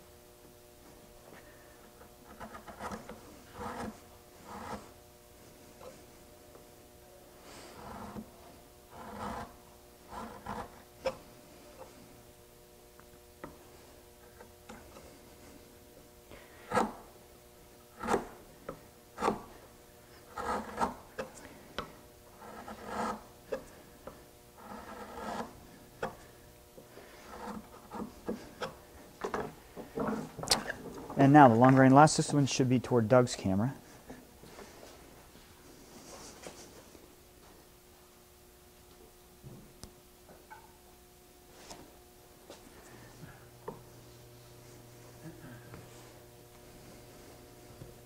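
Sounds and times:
chisel scraping wood: 0:02.2 - 0:05.0, 0:07.5 - 0:12.0, 0:14.2 - 0:15.6, 0:16.6 - 0:17.1, 0:17.9 - 0:30.8.

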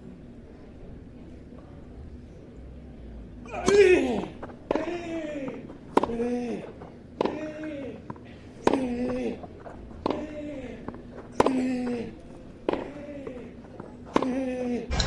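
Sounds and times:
racket striking tennis ball: 0:04.4 - 0:07.7, 0:08.6 - 0:15.0.

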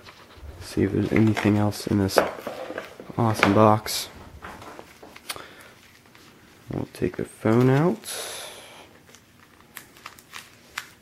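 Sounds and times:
plastic film crinkling: 0:09.0 - 0:11.0.

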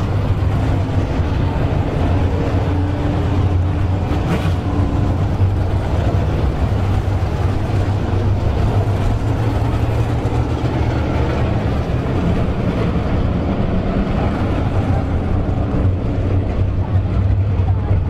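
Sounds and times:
race car engines droning: 0:00.0 - 0:18.0.

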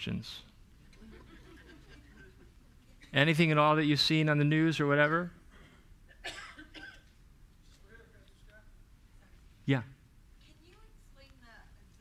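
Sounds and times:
faint cough: 0:05.5 - 0:07.1.

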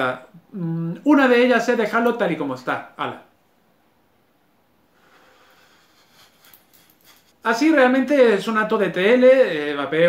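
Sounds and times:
person exhaling vapour: 0:05.0 - 0:06.4.

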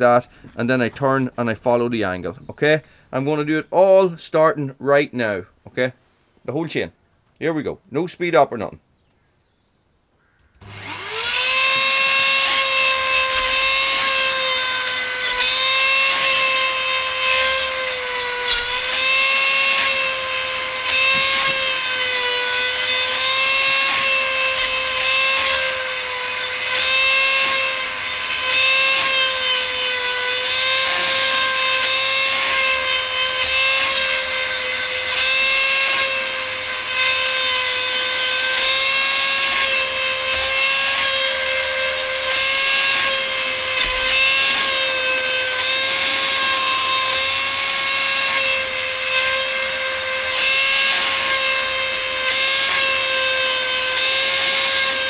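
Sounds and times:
rotary tool grinding whine: 0:10.6 - 0:55.0.

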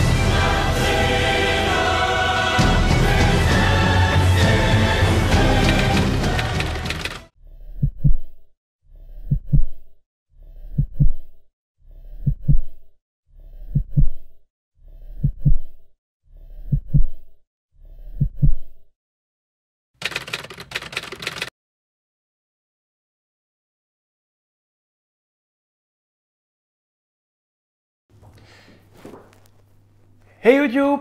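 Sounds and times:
heartbeat thumps: 0:07.8 - 0:08.3, 0:09.2 - 0:09.8, 0:10.7 - 0:11.2, 0:12.2 - 0:12.8, 0:13.7 - 0:14.2, 0:15.2 - 0:15.7.

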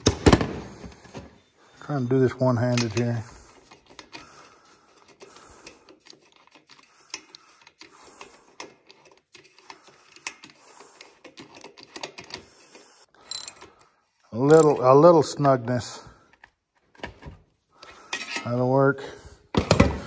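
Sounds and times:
ratchet clicking: 0:13.3 - 0:13.6
socket wrench clicking: 0:13.3 - 0:13.6.

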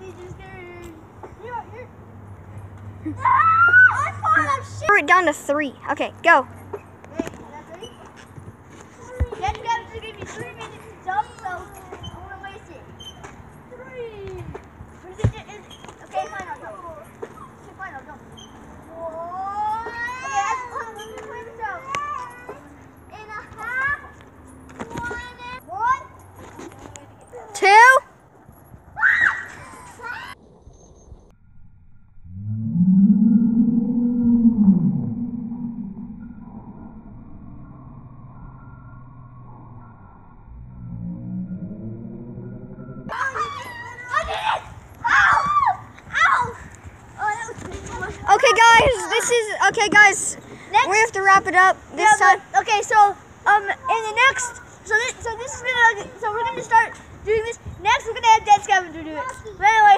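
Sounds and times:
children shouting: 0:03.1 - 0:04.8, 0:29.0 - 0:30.4, 0:43.1 - 0:46.7.

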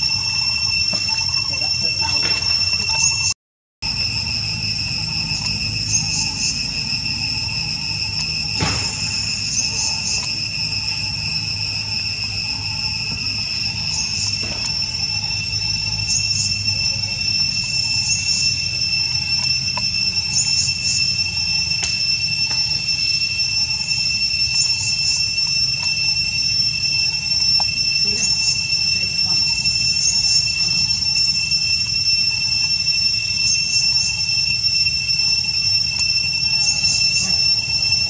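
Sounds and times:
high insect chirps: 0:00.0 - 0:38.0
insects droning: 0:00.0 - 0:38.0.

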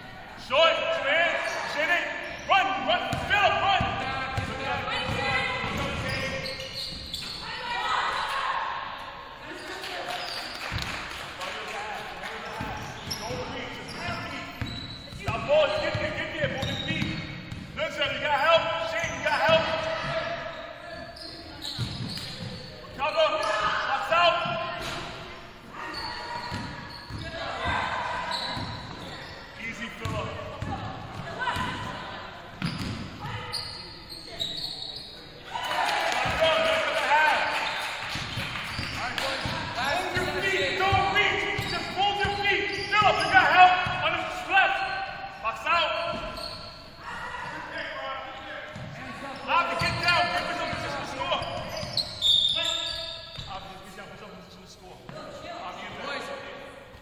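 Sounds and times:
shouts and calls echoing: 0:00.0 - 0:06.5, 0:07.2 - 0:14.6, 0:25.6 - 0:32.5, 0:35.4 - 0:53.4.

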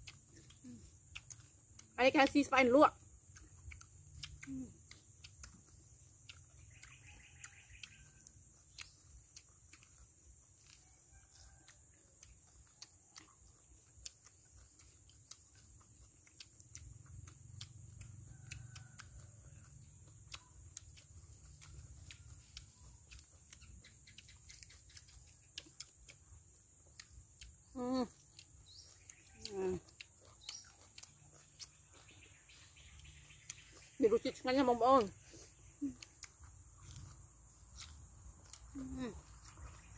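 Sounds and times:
birds chirping: 0:00.3 - 0:09.9, 0:20.0 - 0:39.9.

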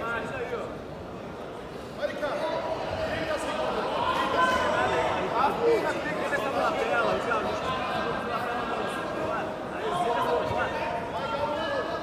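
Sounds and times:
busy sports hall background noise: 0:00.0 - 0:12.0.

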